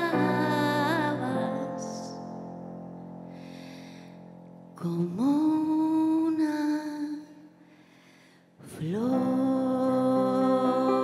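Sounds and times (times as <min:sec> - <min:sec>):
woman singing a slow ballad: 0:00.0 - 0:02.5, 0:04.7 - 0:07.5, 0:08.6 - 0:11.0.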